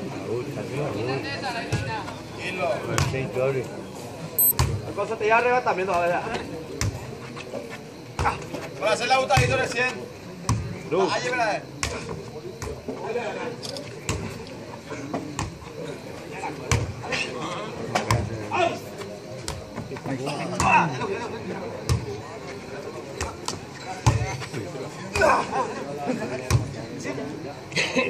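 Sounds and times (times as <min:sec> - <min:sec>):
crowd talking and shouting: 0:00.0 - 0:28.0.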